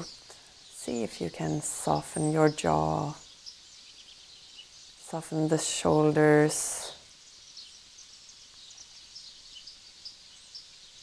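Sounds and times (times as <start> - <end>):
faint high bird chirps: 0.0 - 11.0
low even hiss: 0.0 - 11.0.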